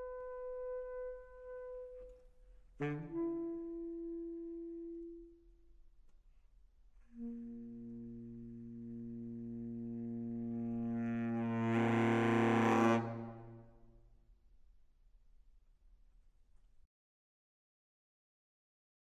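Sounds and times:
baritone saxophone low note: 0:00.0 - 0:02.2, 0:02.8 - 0:05.3, 0:07.1 - 0:13.6.

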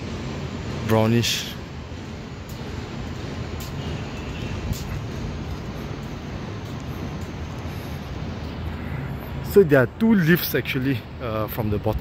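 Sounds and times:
road traffic hum: 0:00.0 - 0:12.0
faint ticks: 0:02.4 - 0:02.8.

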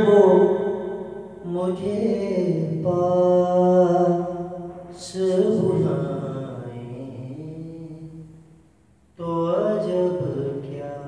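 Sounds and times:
man singing unaccompanied: 0:00.0 - 0:08.5, 0:09.1 - 0:11.0.

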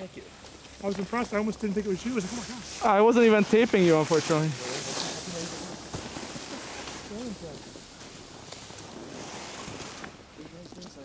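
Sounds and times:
outdoor microphone hiss: 0:00.0 - 0:11.0.

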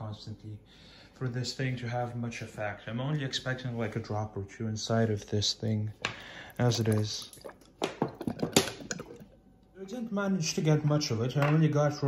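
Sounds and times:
person speaking: 0:01.2 - 0:07.5.

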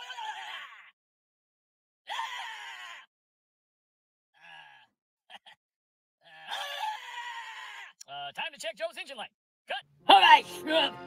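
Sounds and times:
drawn-out scream: 0:02.1 - 0:03.1, 0:06.5 - 0:08.0.

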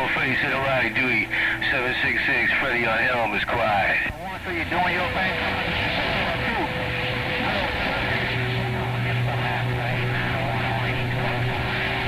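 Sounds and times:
faint garbled radio voices: 0:00.0 - 0:12.0
low hum: 0:00.0 - 0:12.0
radio static hiss: 0:00.0 - 0:12.0.

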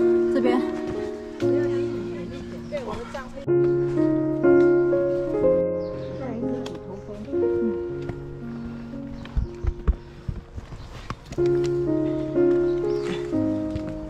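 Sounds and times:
music of sustained chords: 0:00.0 - 0:14.0.

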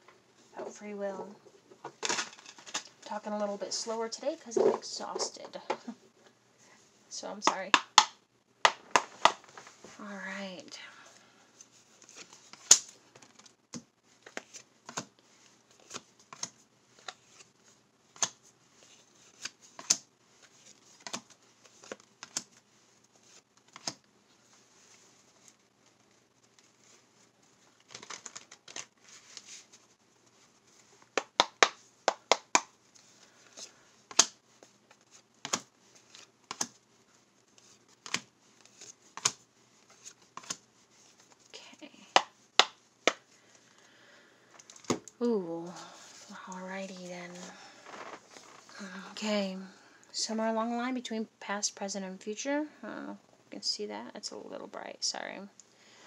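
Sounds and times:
cards clicking on wooden desk: 0:07.5 - 0:09.6, 0:19.4 - 0:20.0, 0:23.7 - 0:24.0, 0:31.2 - 0:32.7, 0:35.4 - 0:36.8, 0:38.0 - 0:39.4, 0:40.0 - 0:40.6, 0:42.2 - 0:43.3
cards shuffling: 0:08.7 - 0:09.9, 0:14.2 - 0:15.1, 0:15.7 - 0:17.5, 0:18.1 - 0:27.0, 0:27.7 - 0:29.9, 0:30.5 - 0:36.8, 0:37.5 - 0:41.4, 0:46.0 - 0:48.8.

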